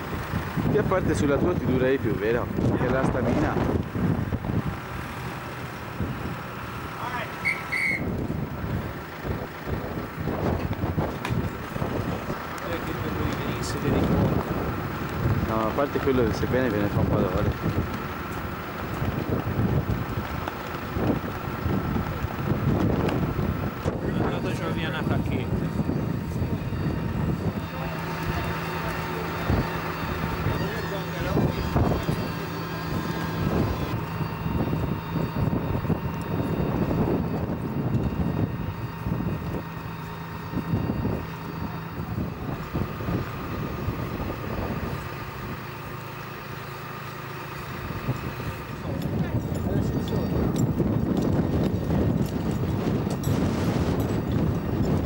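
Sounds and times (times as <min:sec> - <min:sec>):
wind buffeting microphone: 0:00.0 - 0:07.2, 0:07.9 - 0:55.0
machinery whine over low rumble: 0:00.0 - 0:55.0
indistinct voices: 0:05.9 - 0:54.4.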